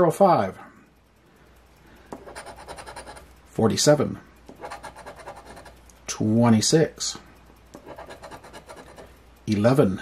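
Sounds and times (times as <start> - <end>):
coin scratching lottery ticket: 2.2 - 3.3, 4.5 - 5.8, 7.7 - 9.1.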